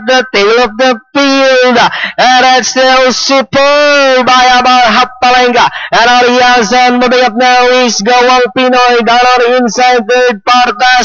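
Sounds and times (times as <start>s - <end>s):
horse race commentator calling: 0.0s - 11.0s.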